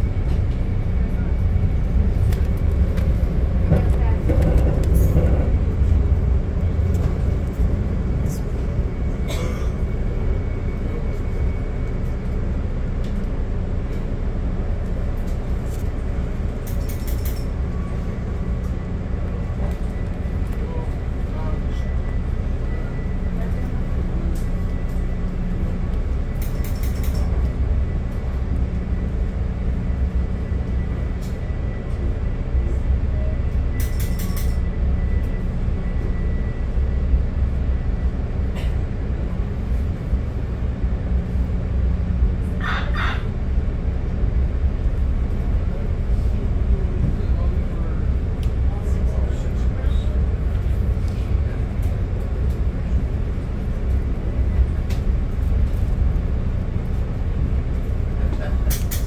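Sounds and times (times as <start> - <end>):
train wheels rumbling: 0.0 - 59.0.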